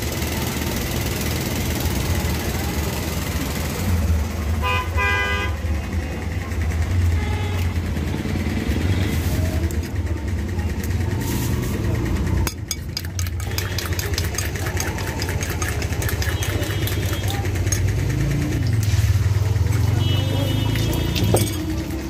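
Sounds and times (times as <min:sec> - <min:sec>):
vehicle horn tooting: 0:04.6 - 0:05.6, 0:16.2 - 0:17.4, 0:19.9 - 0:21.6.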